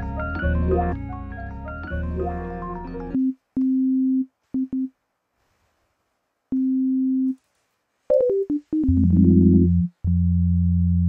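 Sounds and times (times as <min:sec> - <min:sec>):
synth beat loop with deep bass: 0:08.2 - 0:10.6.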